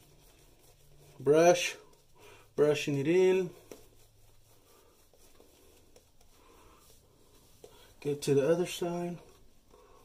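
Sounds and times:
shaving brush scrubbing skin: 0:00.0 - 0:10.0.

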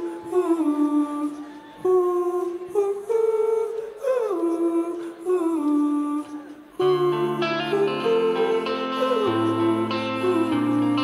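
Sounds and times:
person humming a melody: 0:00.0 - 0:11.0.

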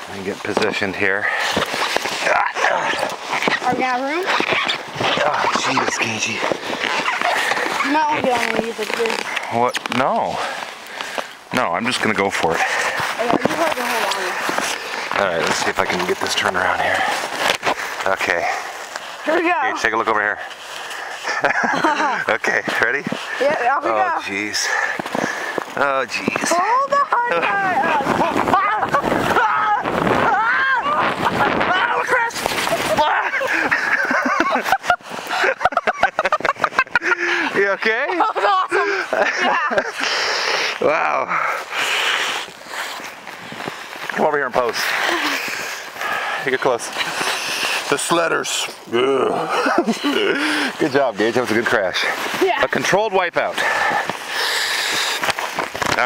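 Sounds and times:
rustle: 0:00.0 - 0:56.0
sled sliding on snow: 0:00.0 - 0:56.0
crash and scramble in snow: 0:00.1 - 0:56.0
people yelling and laughing: 0:00.7 - 0:08.7, 0:20.9 - 0:41.7, 0:44.2 - 0:55.6.

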